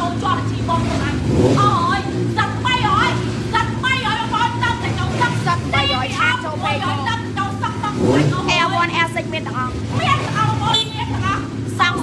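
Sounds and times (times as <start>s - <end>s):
motorcycles idling: 0.0s - 12.0s
people talking: 0.0s - 12.0s.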